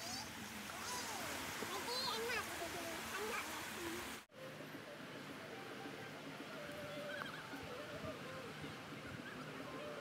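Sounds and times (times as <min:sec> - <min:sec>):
steady outdoor hiss: 0:00.0 - 0:10.0.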